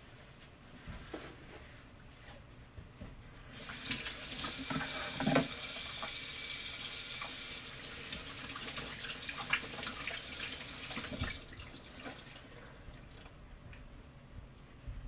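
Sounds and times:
tap water running into sink: 3.6s - 12.3s.

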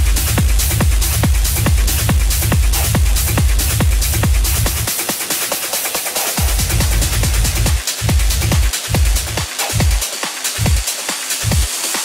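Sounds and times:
deep bass: 0.0s - 4.9s, 6.4s - 10.0s, 10.6s - 10.8s, 11.4s - 11.7s
hi-hats: 0.0s - 12.0s
kick drum: 0.0s - 12.0s
techno music: 0.0s - 12.0s.

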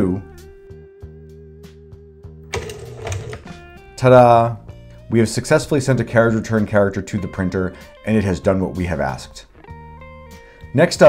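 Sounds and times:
background music: 0.0s - 11.0s
printer carriage clatter: 2.6s - 3.5s.

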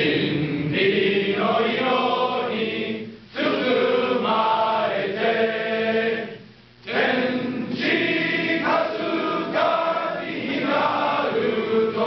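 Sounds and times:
men's choir singing in harmony: 0.0s - 12.0s.

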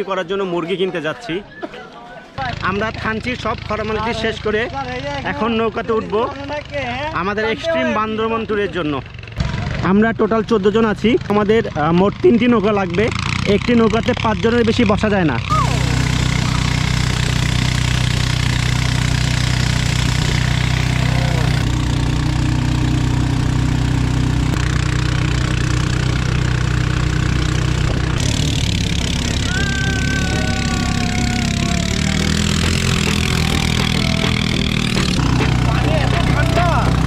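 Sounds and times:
boat engine running: 10.9s - 37.0s.

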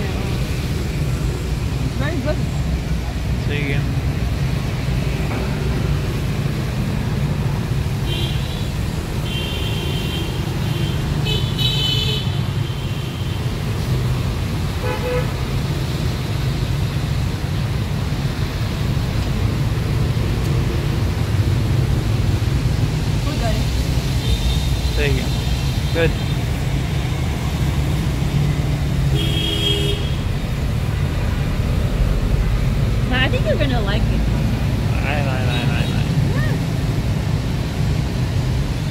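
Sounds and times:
street traffic rumble: 0.0s - 38.9s
vehicle horns tooting: 8.1s - 13.2s, 14.8s - 15.4s, 29.1s - 30.3s.

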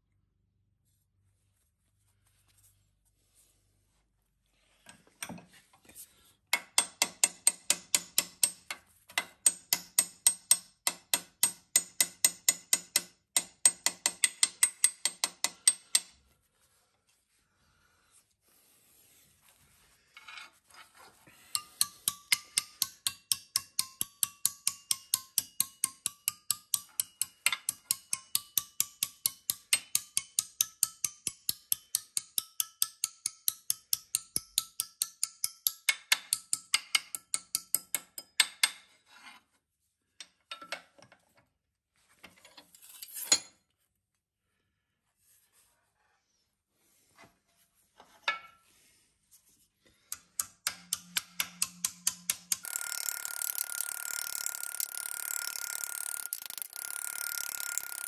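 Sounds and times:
hammer tapping on sheet metal: 6.6s - 16.1s, 21.6s - 38.8s, 50.1s - 52.6s.

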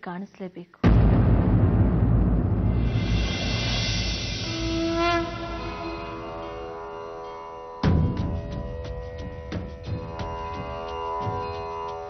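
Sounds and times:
sustained musical note: 4.4s - 8.8s.

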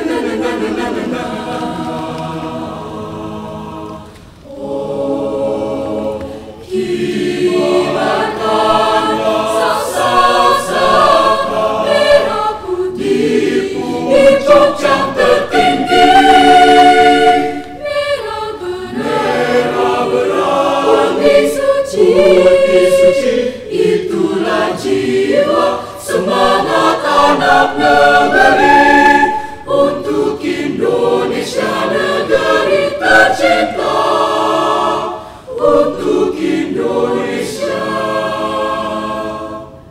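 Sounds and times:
choir singing in parts: 0.0s - 39.9s.

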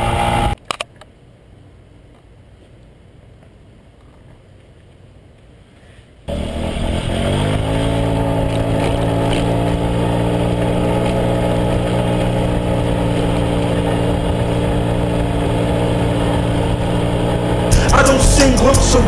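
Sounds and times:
scooter engine pulling away: 6.3s - 19.0s.

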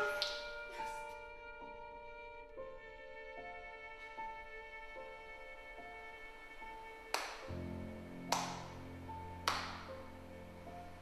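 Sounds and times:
hand claps: 0.0s - 0.9s, 7.1s - 8.8s, 9.4s - 10.0s
sad violin music: 0.0s - 6.8s.

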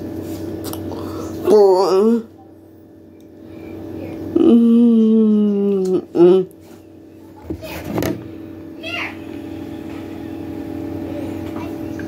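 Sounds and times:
ceiling fan humming: 0.0s - 12.0s.

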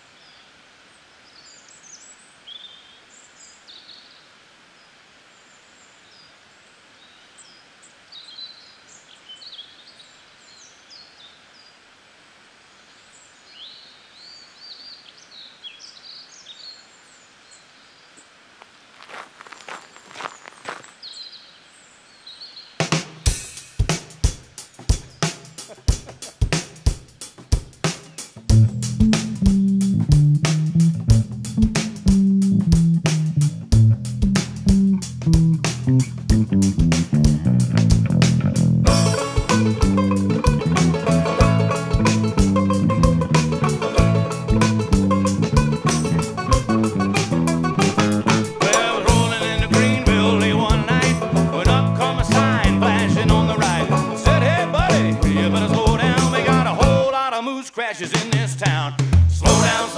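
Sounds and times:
birds chirping: 12.8s - 37.4s, 38.9s - 57.0s
drum kit beat with hi-hat: 22.8s - 57.1s, 58.2s - 59.9s
bass guitar: 27.6s - 57.1s, 59.0s - 59.9s.

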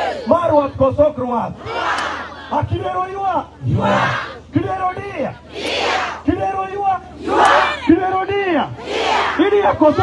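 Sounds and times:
man shouting through loudspeaker: 0.0s - 1.6s, 2.5s - 5.4s, 6.2s - 8.8s, 9.4s - 10.0s
crowd shouting back: 1.6s - 2.8s, 3.6s - 4.5s, 5.3s - 6.3s, 7.1s - 8.1s, 8.7s - 10.0s.

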